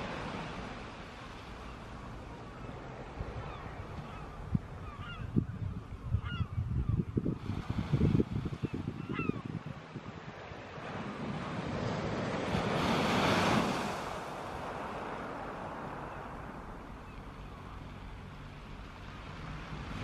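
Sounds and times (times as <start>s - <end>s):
waves washing up shingle beach: 0.0s - 2.2s, 10.4s - 17.0s
bird calls: 2.4s - 7.1s, 8.6s - 9.5s
wind buffeting microphone: 3.1s - 17.1s.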